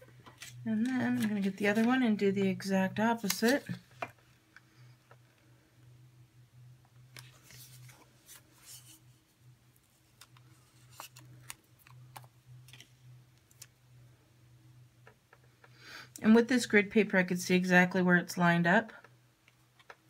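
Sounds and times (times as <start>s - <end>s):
low steady hum: 0.0s - 20.0s
vinyl decal crackling and rustling: 0.1s - 4.4s, 7.0s - 13.8s.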